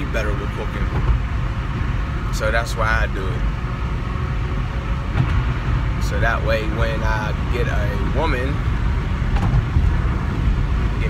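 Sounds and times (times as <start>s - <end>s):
car engine and road noise: 0.0s - 11.0s.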